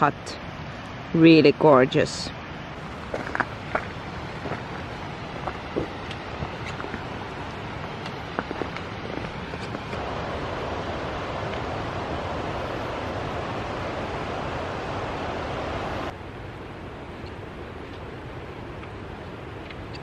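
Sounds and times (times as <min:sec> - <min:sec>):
outdoor hiss: 0:00.0 - 0:20.0
river rushing over stones: 0:00.0 - 0:20.0.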